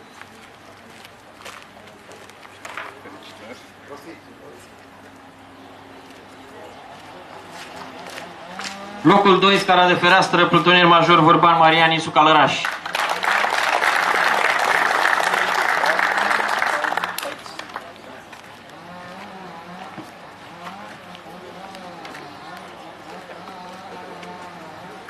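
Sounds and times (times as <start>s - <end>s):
faint background talk: 0.0s - 9.1s, 14.2s - 25.0s
audience applauding: 12.5s - 17.9s.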